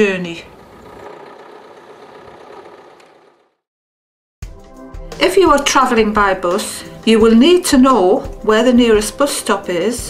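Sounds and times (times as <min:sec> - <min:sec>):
van engine idling: 0:00.5 - 0:03.6.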